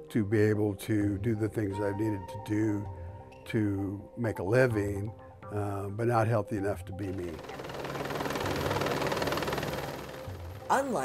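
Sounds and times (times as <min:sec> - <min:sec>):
helicopter rotor and engine: 0:07.0 - 0:11.0.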